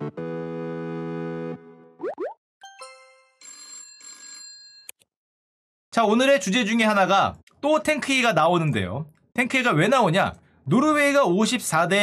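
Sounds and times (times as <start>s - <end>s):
held synthesizer chord: 0.0s - 2.0s
chiming tones: 2.6s - 3.4s.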